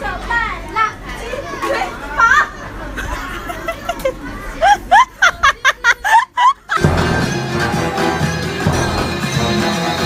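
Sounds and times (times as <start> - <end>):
children chattering and calling out: 0.0 - 7.2.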